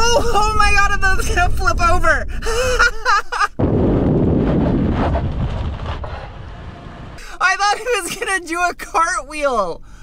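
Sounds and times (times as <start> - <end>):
tyre and road noise: 3.6 - 7.2
wind rushing over camera: 3.6 - 7.2.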